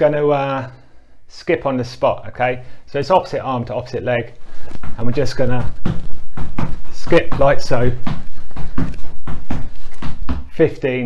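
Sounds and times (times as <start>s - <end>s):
feet thudding on exercise mat: 4.3s - 10.7s.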